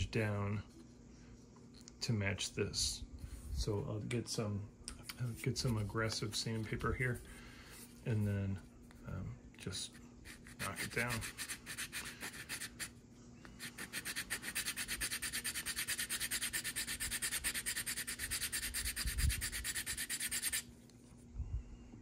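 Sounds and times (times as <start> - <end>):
sandpaper rubbing plastic: 10.3 - 13.0, 13.6 - 20.7.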